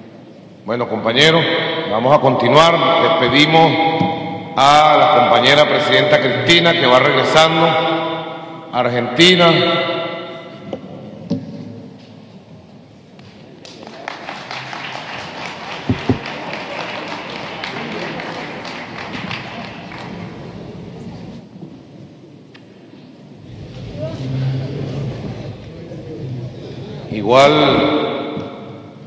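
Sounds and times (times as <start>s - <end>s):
murmur of voices: 12.2s - 29.0s
audience clapping: 13.6s - 20.8s.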